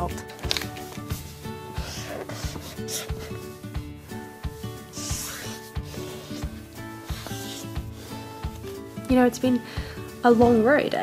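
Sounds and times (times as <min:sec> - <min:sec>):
background music with beat: 0:00.0 - 0:11.0
pen scribbling on paper: 0:01.7 - 0:03.7, 0:04.5 - 0:08.6.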